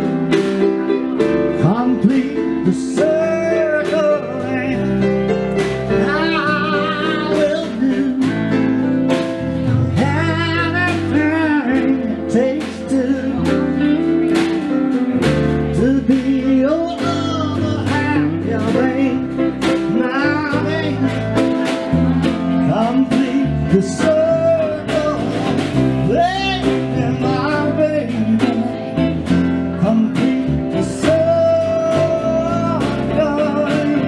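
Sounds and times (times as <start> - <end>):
bass line: 0.0 - 34.0
electric guitar: 0.0 - 34.0
electric keyboard: 0.0 - 34.0
man singing with vibrato: 0.0 - 34.0.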